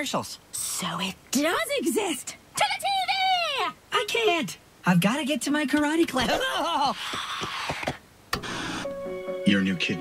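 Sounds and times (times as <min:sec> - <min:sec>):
television switching on click and hiss: 0:05.6 - 0:06.3, 0:06.9 - 0:09.0.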